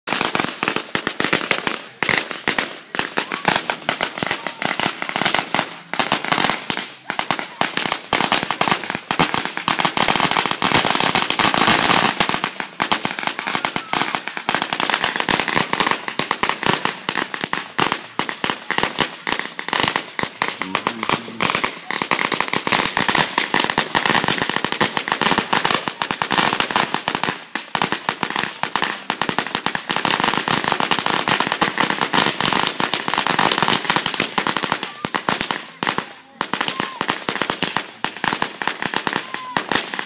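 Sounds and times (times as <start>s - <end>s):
firecrackers popping and crackling: 0.0s - 40.0s.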